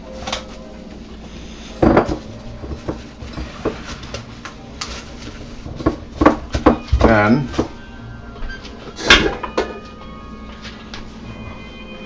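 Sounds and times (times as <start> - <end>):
plastic wrap crinkling: 0.0 - 8.0.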